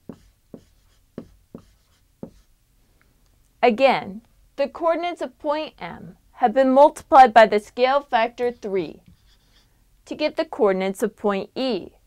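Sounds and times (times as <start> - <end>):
marker writing on whiteboard: 0.0 - 2.5, 8.3 - 9.7.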